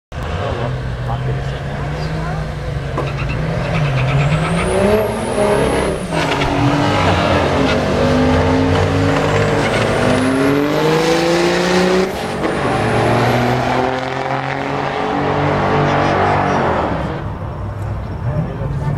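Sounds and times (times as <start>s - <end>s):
diesel truck engine at full throttle: 0.1s - 18.9s.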